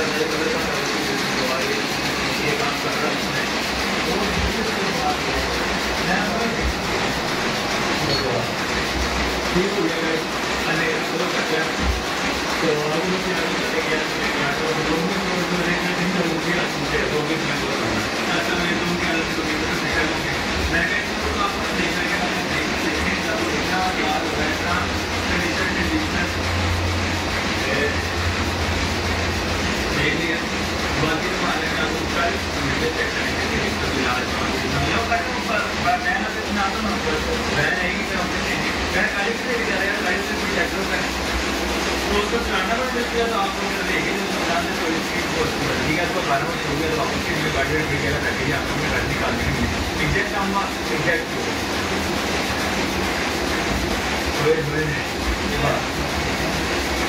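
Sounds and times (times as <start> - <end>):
printing press running: 0.0 - 57.0.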